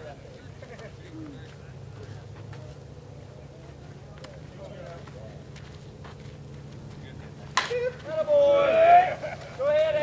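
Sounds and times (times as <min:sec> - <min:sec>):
bat striking ball crack: 0:07.5 - 0:07.9
person shouting: 0:07.7 - 0:10.0.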